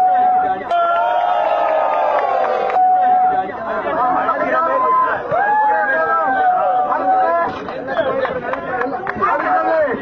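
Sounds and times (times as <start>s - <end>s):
people talking: 0.0s - 1.2s, 2.3s - 10.0s.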